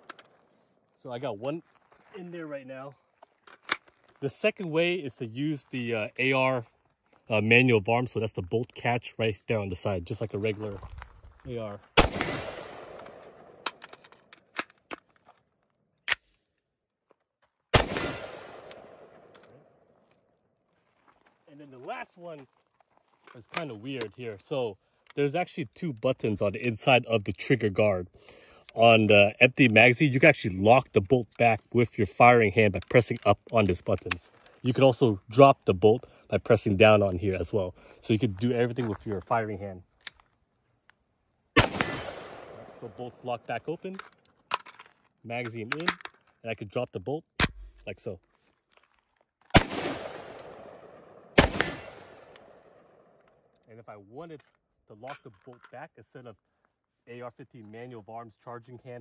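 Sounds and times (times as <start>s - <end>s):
rifle shots with echo: 12.0s - 13.8s, 17.7s - 19.8s, 41.6s - 43.0s, 49.5s - 53.1s
rifle bolt clack: 12.0s - 15.0s, 45.7s - 46.2s, 47.4s - 47.8s
metallic magazine clicks: 16.0s - 16.6s, 45.7s - 46.3s, 47.4s - 47.8s
rifle bolt locking back: 45.7s - 46.2s, 47.4s - 47.8s.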